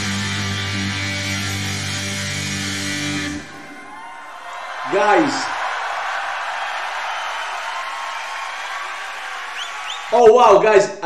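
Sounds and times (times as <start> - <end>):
crowd cheering and applauding: 2.7 - 10.4
short rising whistles: 9.5 - 10.2.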